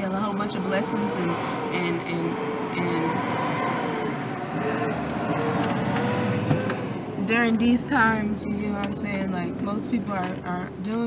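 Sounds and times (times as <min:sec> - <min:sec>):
steady rushing noise in car cabin: 0:00.0 - 0:11.0.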